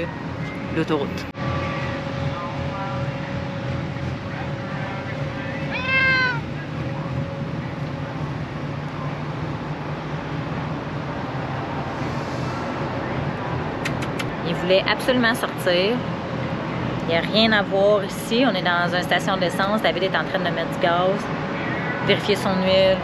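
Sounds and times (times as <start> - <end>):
low background hum: 0.0 - 23.0
cat meowing: 5.7 - 6.4.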